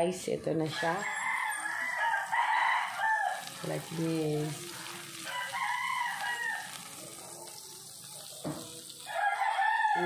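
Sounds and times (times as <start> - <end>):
chicken frying in oil: 0.6 - 10.0
rooster crowing: 0.7 - 3.5, 5.2 - 6.8, 9.0 - 10.0.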